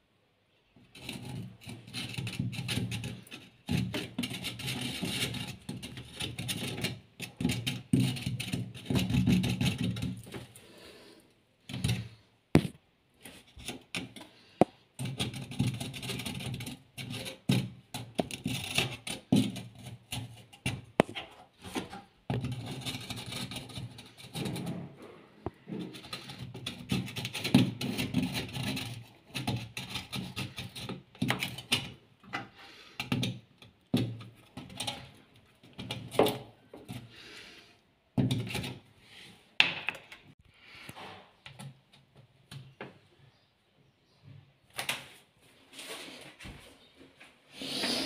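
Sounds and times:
metal tool scraping mesh filter: 1.0 - 10.5.

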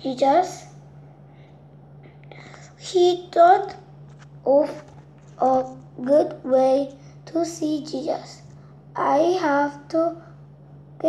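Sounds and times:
child speaking: 0.0 - 0.8, 2.7 - 10.4
steady low hum: 0.0 - 11.0
soft breath: 1.2 - 2.8.

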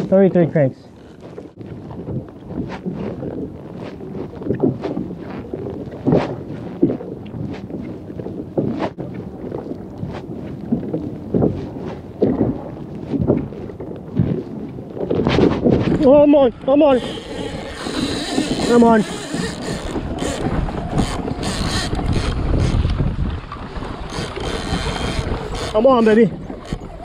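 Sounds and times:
water slapping against kayak: 0.0 - 27.0
wind buffeting microphone: 0.0 - 27.0.

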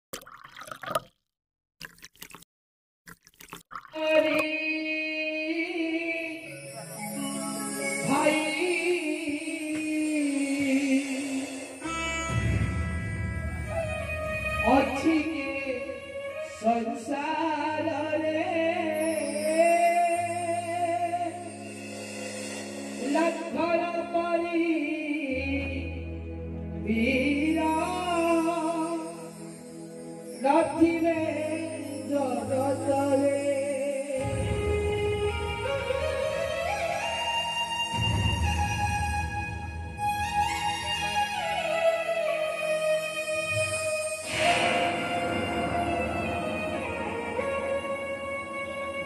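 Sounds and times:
bubbling dripping water: 0.1 - 2.5, 3.1 - 4.5.

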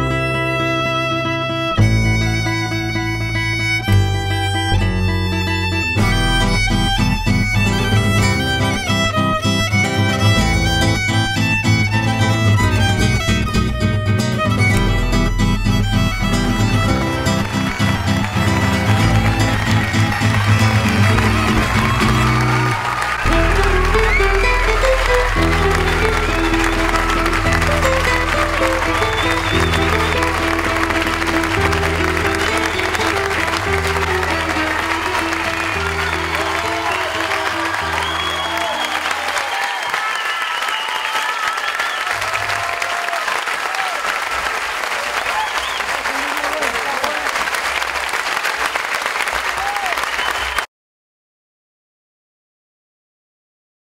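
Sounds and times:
audience applauding: 3.8 - 13.8, 14.6 - 50.7
slow closing music: 16.3 - 39.4.

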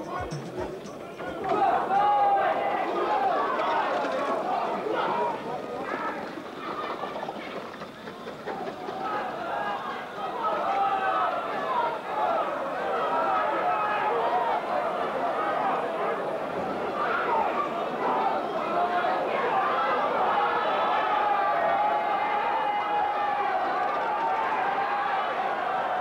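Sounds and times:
crowd shouting and cheering: 0.0 - 26.0.

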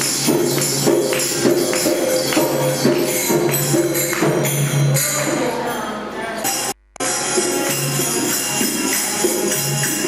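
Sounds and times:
jingling tambourine: 0.0 - 5.6, 6.5 - 10.0
music with voices: 0.0 - 10.0.

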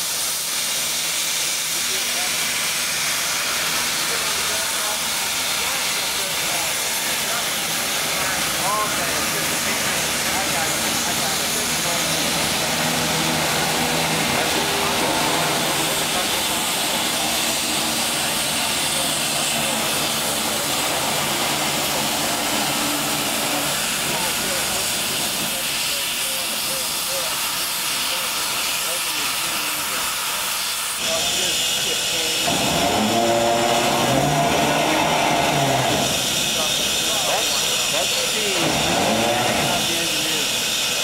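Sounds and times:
steam locomotive hissing steam: 0.0 - 41.0.

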